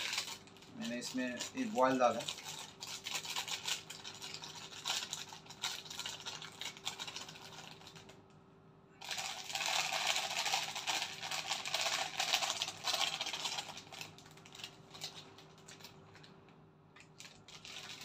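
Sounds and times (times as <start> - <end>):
plastic bag crinkling: 0.0 - 8.2, 9.0 - 18.0.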